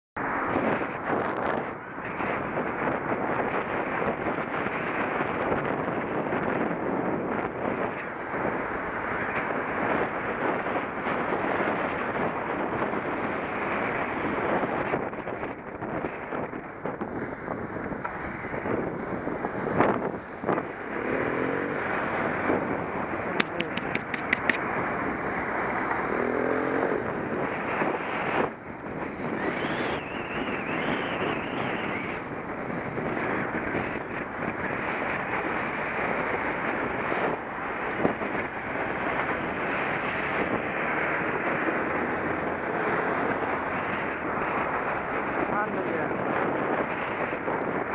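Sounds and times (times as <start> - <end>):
wind rushing over microphone: 0.2 - 47.9
run of clicks: 23.4 - 24.6.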